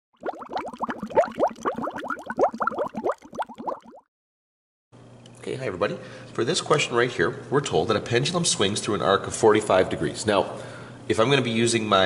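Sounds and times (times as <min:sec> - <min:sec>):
bubbling water plops: 0:00.1 - 0:04.1.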